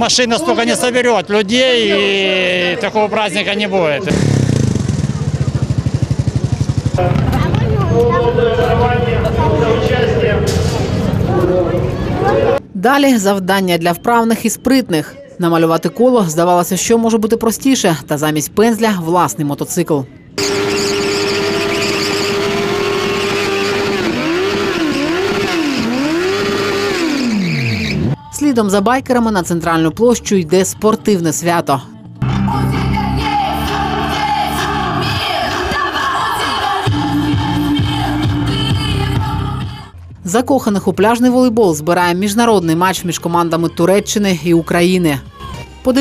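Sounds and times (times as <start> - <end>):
voices: 0.0 - 20.3, 33.1 - 46.0
motorcycle engine running: 4.0 - 9.8, 20.4 - 28.2.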